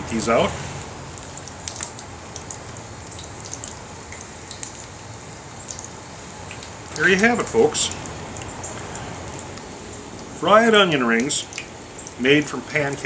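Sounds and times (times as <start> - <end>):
onion rings sizzling in hot oil: 0.6 - 10.4.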